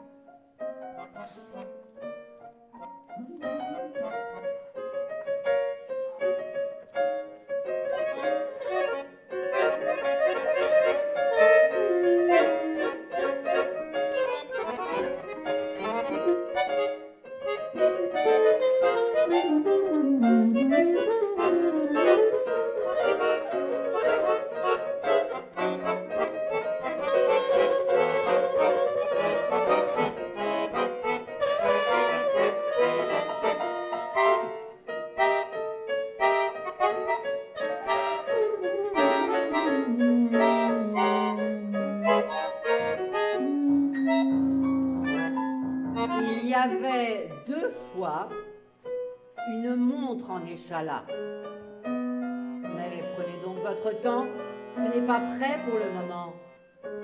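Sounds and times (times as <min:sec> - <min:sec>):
trumpet: 0:07.9 - 0:15.0, 0:17.8 - 0:34.7, 0:37.6 - 0:46.6.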